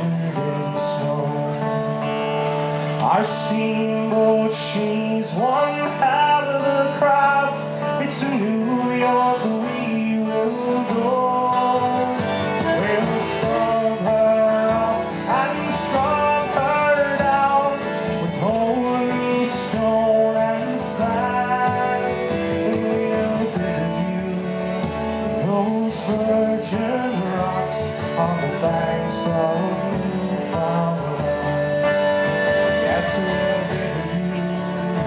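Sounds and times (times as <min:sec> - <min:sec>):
acoustic guitars strumming: 0:00.0 - 0:35.0
man singing folk song: 0:00.0 - 0:35.0.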